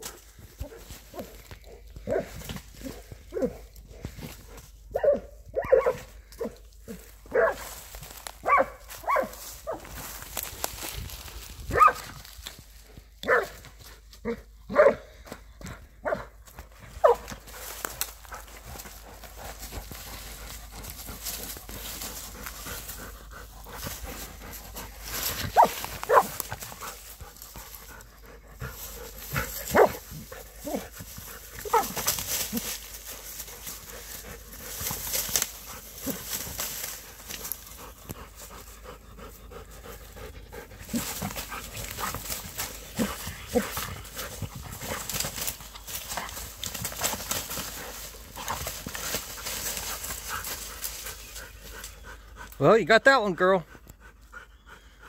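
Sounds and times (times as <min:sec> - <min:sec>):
rustling of leaves and twigs: 0:00.0 - 0:52.7
dog panting: 0:16.7 - 0:52.6, 0:53.6 - 0:55.0.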